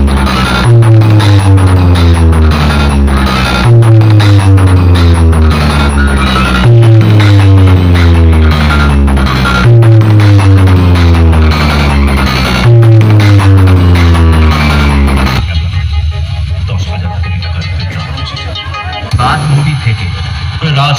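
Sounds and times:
deep bass notes sliding down: 0.0s - 15.5s
loud bass-heavy music: 0.0s - 20.9s.

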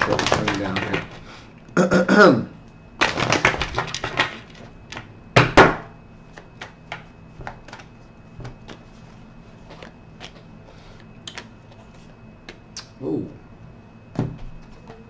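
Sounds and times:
cards being shuffled: 0.0s - 1.2s.

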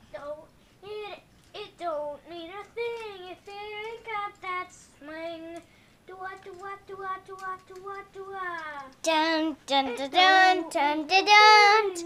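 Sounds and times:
boy singing wordless syllables: 0.1s - 12.0s.

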